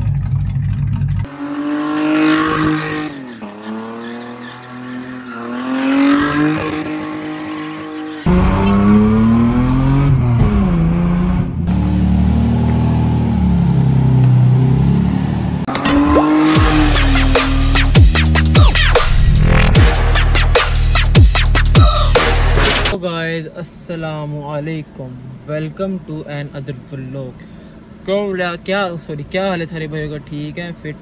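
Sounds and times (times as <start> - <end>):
rotary engine revving: 0.0 - 23.0
tyres squealing: 2.5 - 8.4.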